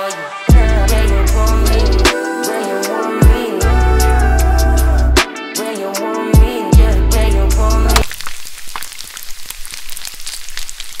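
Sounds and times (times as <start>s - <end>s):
bacon and eggs sizzling: 8.0s - 11.0s.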